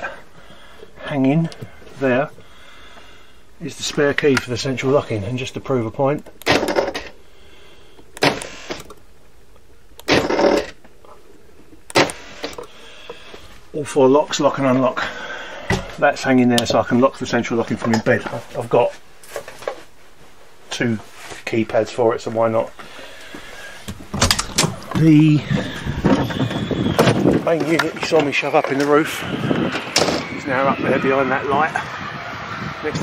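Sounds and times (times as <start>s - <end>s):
door lock solenoids thunking: 6.2s - 7.2s, 8.2s - 9.0s, 11.9s - 12.7s, 24.0s - 27.8s.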